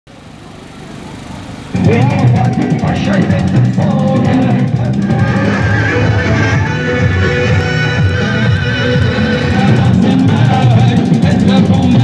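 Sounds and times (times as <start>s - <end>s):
outdoor background noise: 0.1s - 7.9s
low motor hum: 0.1s - 12.0s.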